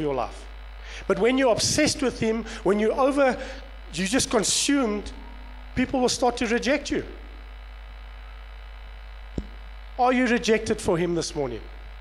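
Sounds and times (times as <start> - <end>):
low electrical mains hum: 0.0 - 12.0.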